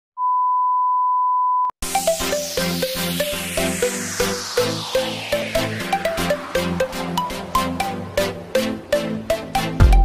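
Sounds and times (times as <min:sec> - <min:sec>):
electronic dance music: 0:01.8 - 0:10.0.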